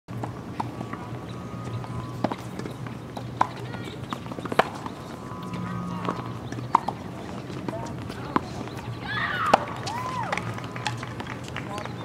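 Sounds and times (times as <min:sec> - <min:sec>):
faint voices: 0:00.1 - 0:12.0.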